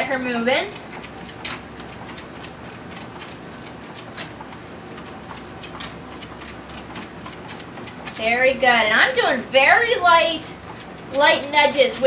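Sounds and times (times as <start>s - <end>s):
treadmill motor humming: 0.0s - 12.0s.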